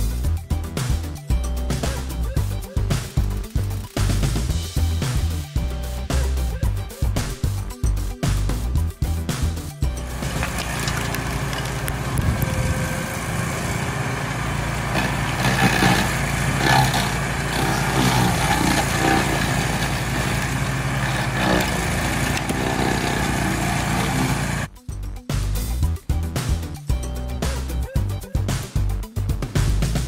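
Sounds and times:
stump grinder engine running: 9.8 - 24.7
cutter wheel grinding wood: 9.9 - 24.7.

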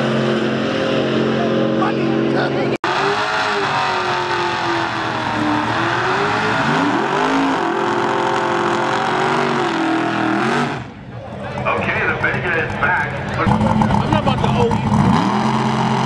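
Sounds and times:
car engine revving hard: 0.0 - 11.0, 13.4 - 16.0.

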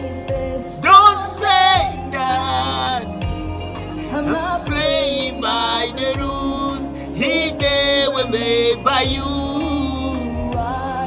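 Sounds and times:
synth backing with bass: 0.0 - 11.0
electronic kick drum: 4.5 - 5.1, 7.6 - 8.1, 9.0 - 9.7.

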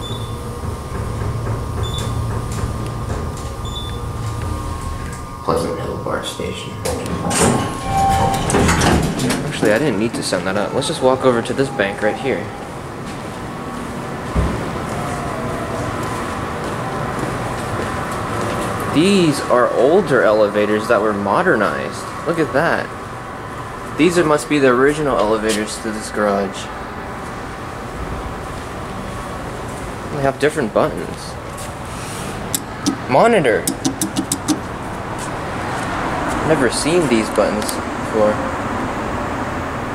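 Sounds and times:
parking garage background noise: 0.0 - 39.9
elevator button clicks: 32.6 - 34.7.

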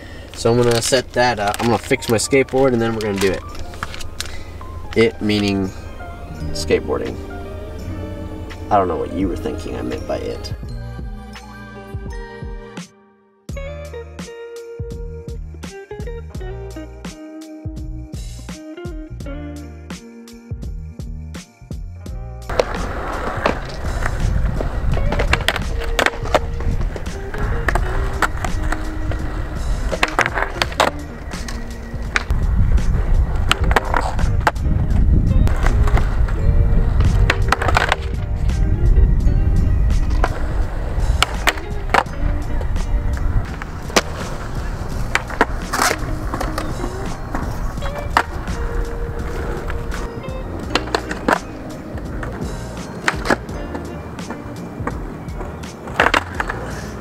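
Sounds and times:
skateboard wheels rolling on concrete: 0.0 - 12.3, 22.1 - 57.0
background music: 0.0 - 57.0
skateboard clacks: 22.5 - 32.4, 33.3 - 34.6, 35.4 - 38.3, 39.9 - 57.0.

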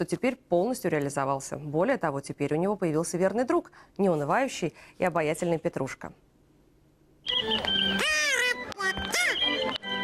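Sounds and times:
held musical tones: 7.2 - 10.0
shrill squeaky puppet voice: 7.4 - 9.8.

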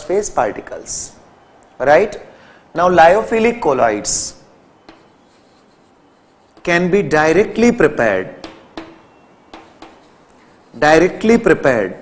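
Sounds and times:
person speaking: 1.8 - 12.0
chalk tap: 4.8 - 6.8, 8.4 - 10.8
chalk scratching on blackboard: 4.9 - 7.7, 8.4 - 11.4.

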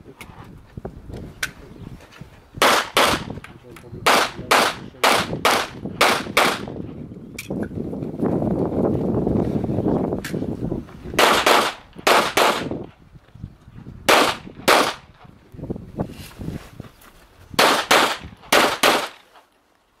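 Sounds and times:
handgun shots in quick pairs: 2.6 - 3.4, 4.0 - 6.8, 11.2 - 12.8, 14.1 - 15.1, 17.6 - 19.3.

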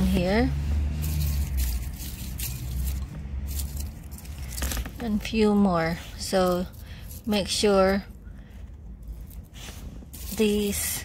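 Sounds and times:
rustling and scraping: 0.0 - 11.0.

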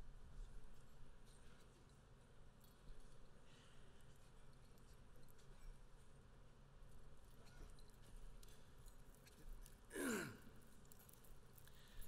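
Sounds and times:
man sighing into a microphone: 9.9 - 10.5.

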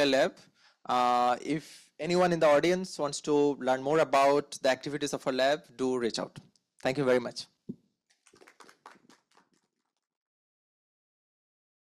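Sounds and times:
faint audience applause: 8.2 - 9.7.

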